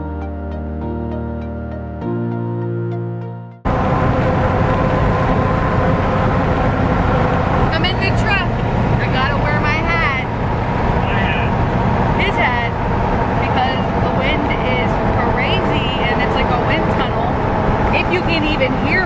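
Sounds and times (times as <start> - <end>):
road and engine noise in vehicle: 3.6 - 19.0
unclear voices talking: 11.0 - 11.6, 12.2 - 12.8, 13.4 - 19.0.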